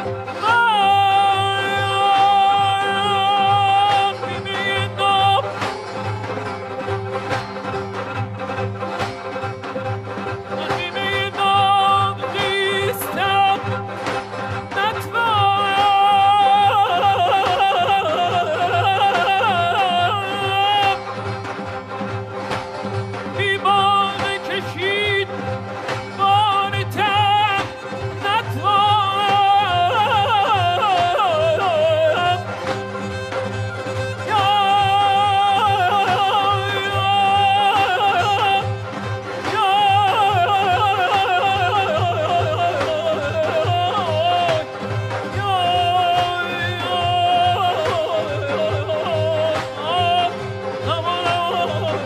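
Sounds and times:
man singing with vibrato: 0.0 - 7.3, 10.3 - 21.9, 23.2 - 52.0.

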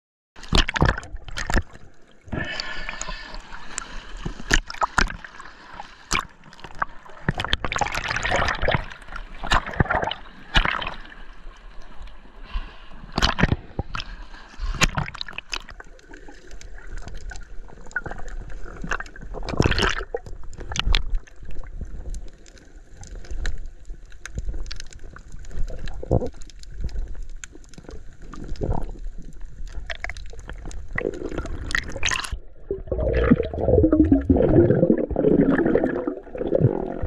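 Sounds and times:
underwater bubbles and sloshing: 0.4 - 37.0.

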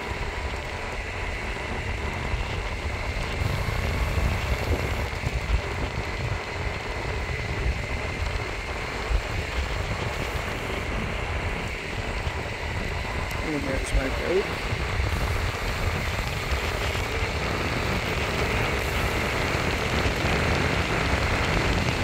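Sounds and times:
faint high whine: 0.0 - 22.0
tyres rolling on asphalt: 0.0 - 22.0
wind buffeting microphone: 0.0 - 22.0.

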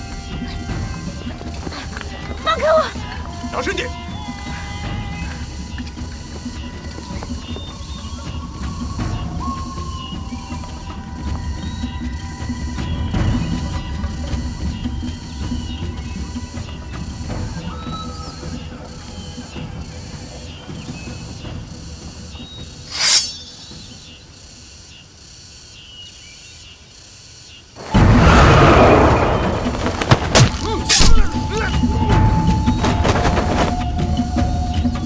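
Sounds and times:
sharp swish: 22.9 - 23.6.

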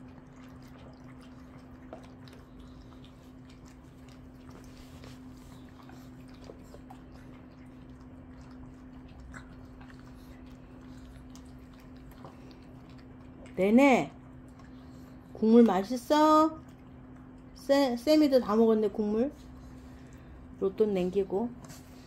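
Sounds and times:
dogs lapping and chewing: 0.0 - 22.0.

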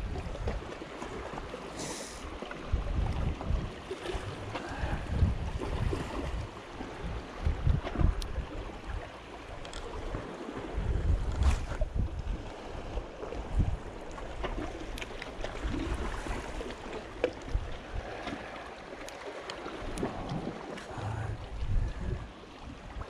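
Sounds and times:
wind rumbling on microphone: 0.0 - 1.5, 2.5 - 18.6, 19.6 - 23.0
sea washing against rocks: 0.0 - 23.0.

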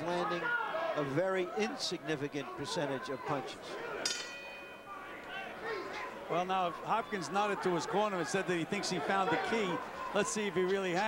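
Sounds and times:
boxing ring bell ringing: 4.0 - 4.9.

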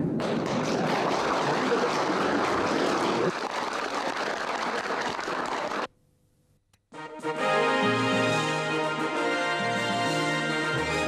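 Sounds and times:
large audience applauding: 0.2 - 5.9.

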